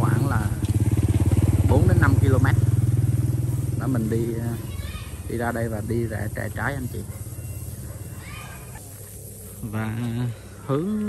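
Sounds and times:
motorcycle engine running: 0:00.0 - 0:10.9.

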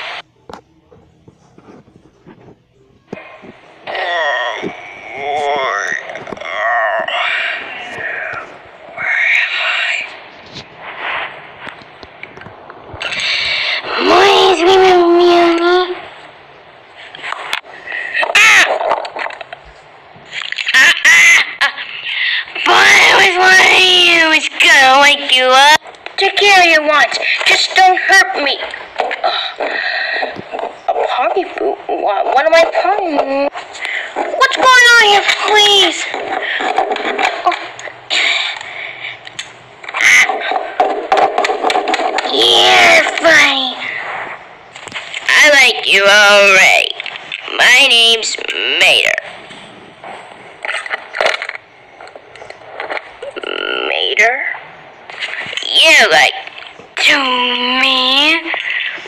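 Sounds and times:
short scratchy noise: 0:07.4 - 0:15.4.

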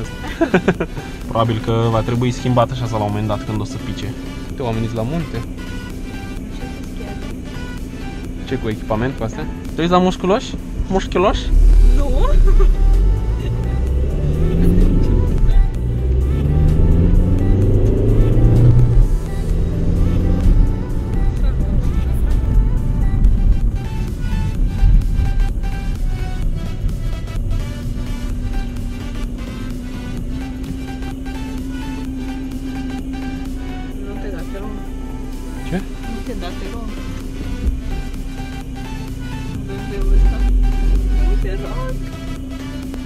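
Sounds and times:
car engine accelerating: 0:00.0 - 0:43.0
music with regular beat: 0:00.0 - 0:43.0.

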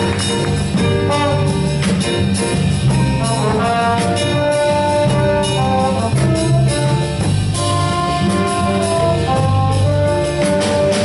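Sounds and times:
jazz band playing: 0:00.0 - 0:11.0.

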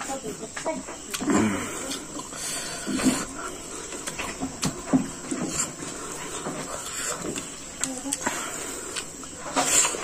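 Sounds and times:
man chewing and lip smacking: 0:01.1 - 0:10.0.

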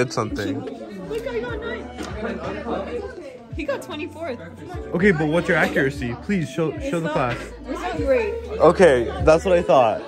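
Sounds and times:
chatter of voices: 0:00.0 - 0:10.0
music playing: 0:00.0 - 0:10.0.

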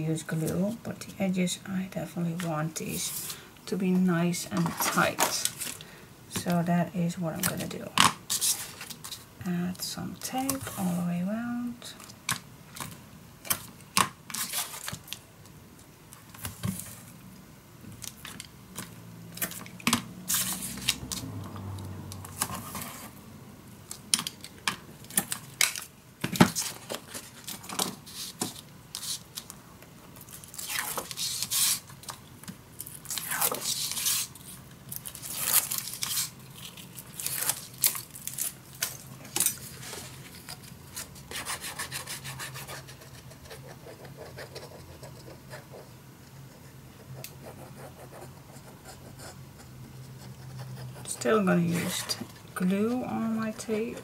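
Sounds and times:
tape rubbed onto paper: 0:30.6 - 0:31.8.

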